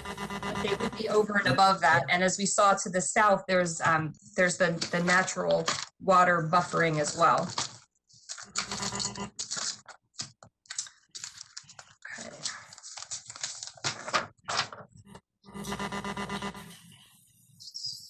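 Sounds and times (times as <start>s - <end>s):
paper rustling and shuffling: 4.8s - 6.0s, 6.6s - 14.9s.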